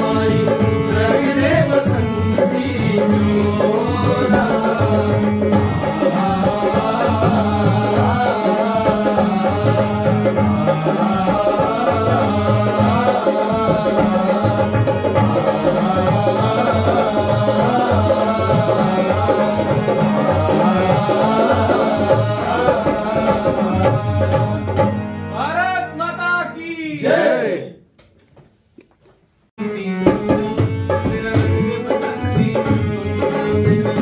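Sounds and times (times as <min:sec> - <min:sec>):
lone singing voice: 0:00.0 - 0:24.8, 0:25.4 - 0:27.8
men singing in chorus: 0:00.0 - 0:25.0, 0:29.9 - 0:34.0
tabla: 0:00.0 - 0:25.3, 0:29.6 - 0:34.0
dholak: 0:00.0 - 0:25.7, 0:29.6 - 0:34.0
harmonium: 0:00.0 - 0:26.9, 0:29.6 - 0:34.0.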